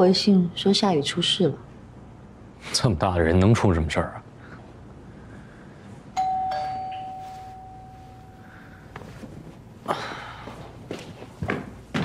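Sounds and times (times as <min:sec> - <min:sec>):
two-tone doorbell chime: 0:06.2 - 0:08.5.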